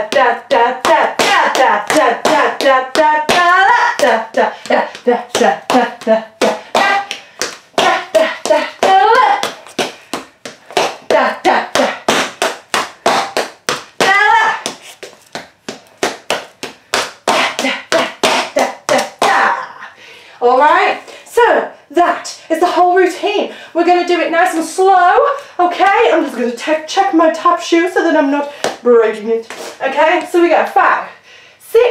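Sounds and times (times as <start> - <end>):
tap shoes on hard floor: 0.8 - 19.5.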